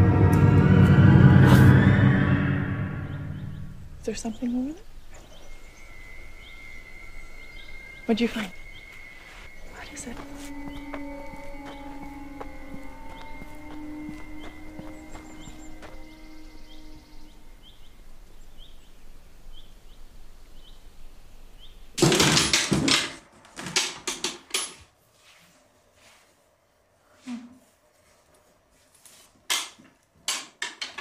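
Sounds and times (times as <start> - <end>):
high chirp: 1.6 - 17.9.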